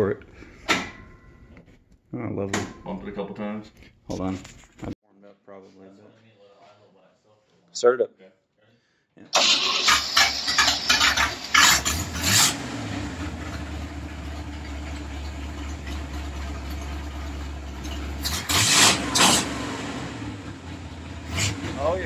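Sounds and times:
engine revving bursts: 9.4 - 14.5, 17.5 - 22.0
car engine starting and idling: 9.4 - 22.0.

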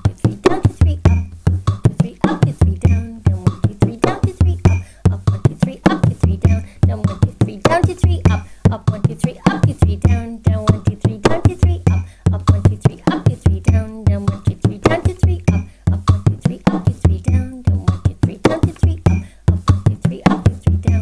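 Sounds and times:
frame drum played with a stick: 0.0 - 21.0.

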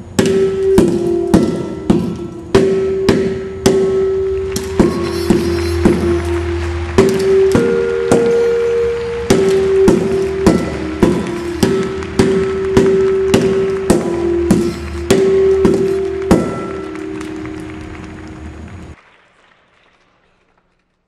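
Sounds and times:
scuba tanks ringing on hard floor: 0.0 - 19.0.

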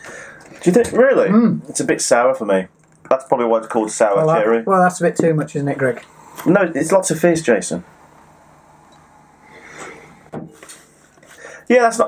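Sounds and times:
breathy drinking sound: 0.0 - 0.6, 8.0 - 11.7.

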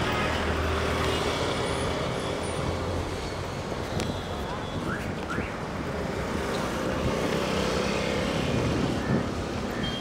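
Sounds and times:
road traffic going by: 0.0 - 10.0
wind rumble on microphone: 8.2 - 9.7.

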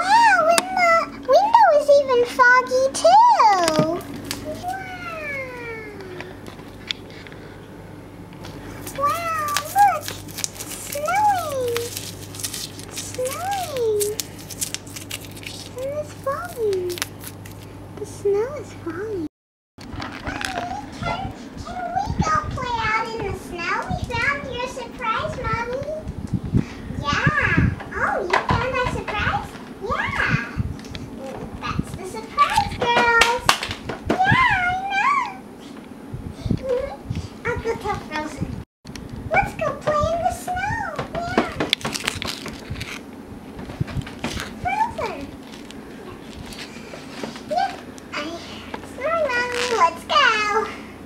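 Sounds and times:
high-pitched childlike play voice: 0.0 - 6.4, 8.9 - 12.0, 12.9 - 14.2, 15.8 - 17.0, 20.1 - 26.0, 27.0 - 33.5, 34.1 - 35.4, 36.4 - 38.5, 39.3 - 41.8, 44.6 - 45.4, 47.5 - 50.8.

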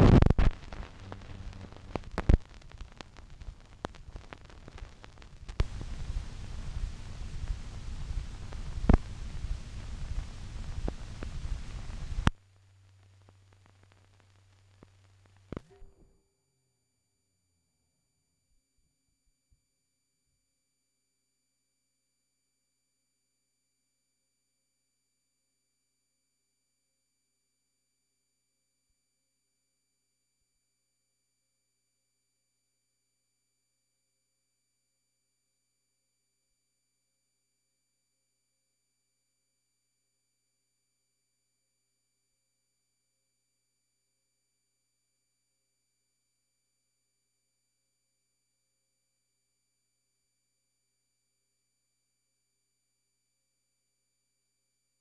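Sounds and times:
faint steady hum: 0.0 - 16.7.

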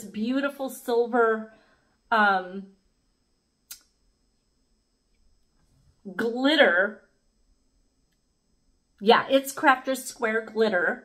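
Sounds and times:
faint small ticks: 3.6 - 4.0.

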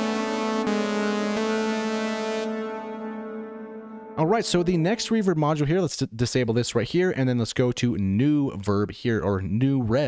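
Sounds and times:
synthesizer chord with reverb: 0.0 - 5.4.

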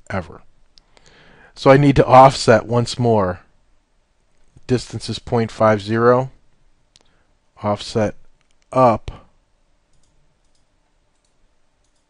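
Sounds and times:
computer mouse clicks: 9.9 - 12.0.

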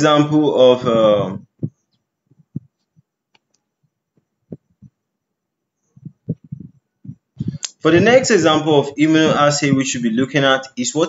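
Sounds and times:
soft low thumps: 1.0 - 3.2, 3.8 - 5.1, 5.8 - 10.0.

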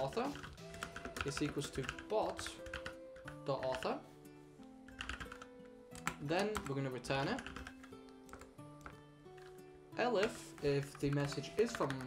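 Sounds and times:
keyboard typing: 0.0 - 4.0, 4.8 - 12.0
soft background music: 0.0 - 12.0.

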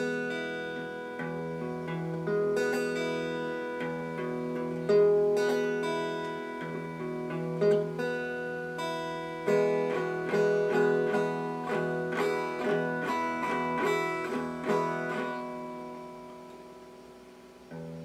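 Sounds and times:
electric guitar picking: 0.0 - 18.0.

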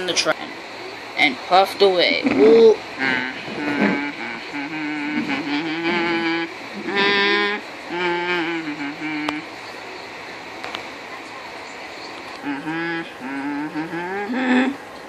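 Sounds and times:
person imitating steam whistle: 2.6 - 9.5, 12.4 - 14.9.

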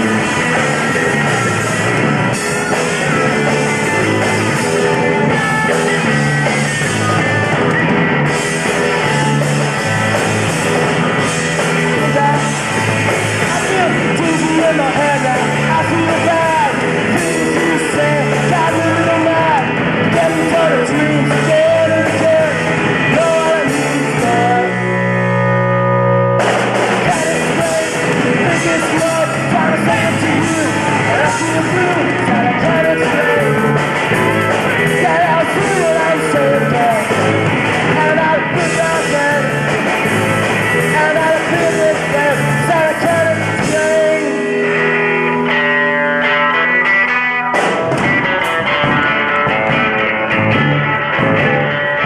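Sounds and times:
person singing: 0.0 - 25.4, 26.9 - 45.6
drums: 0.0 - 52.0
electric guitar: 0.0 - 52.0
rock band playing: 0.0 - 52.0.

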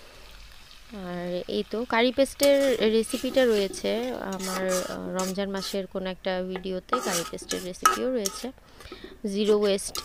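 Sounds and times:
person speaking: 1.8 - 10.0
spatula scraping in a wok: 2.3 - 6.0, 6.6 - 10.0.

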